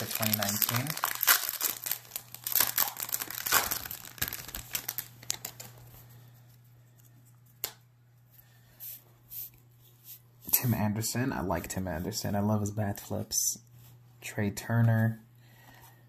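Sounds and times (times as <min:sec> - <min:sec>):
wrapper crinkling and tearing: 0:00.0 - 0:05.9.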